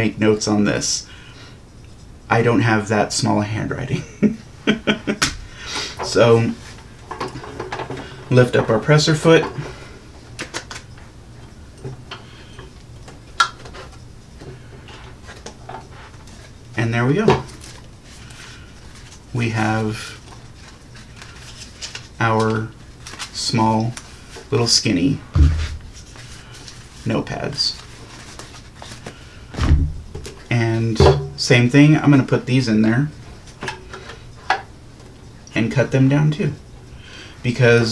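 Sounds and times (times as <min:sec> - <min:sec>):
paper rustling: 0:17.4 - 0:29.6
heavy thump: 0:25.3 - 0:26.0, 0:29.5 - 0:30.2.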